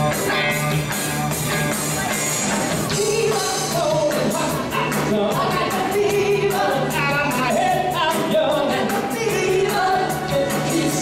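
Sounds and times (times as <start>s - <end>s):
live band playing: 0.0s - 11.0s
steady drumbeat: 0.0s - 11.0s
several voices singing: 2.9s - 11.0s.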